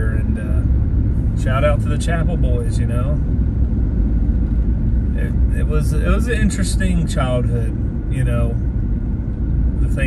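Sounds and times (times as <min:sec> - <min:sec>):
car road noise rumble: 0:00.0 - 0:10.0.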